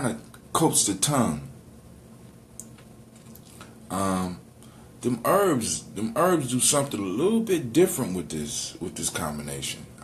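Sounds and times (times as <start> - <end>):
man's voice: 5.0 - 9.9.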